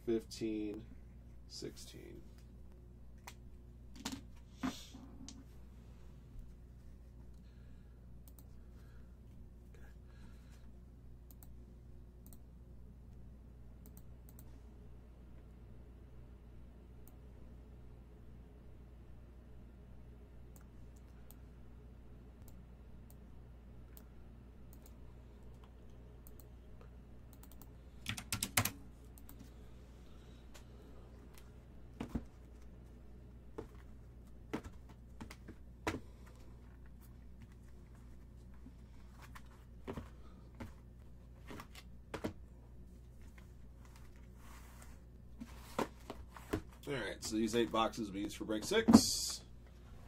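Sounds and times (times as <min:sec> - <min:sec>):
low steady hum: 0:00.0 - 0:50.0.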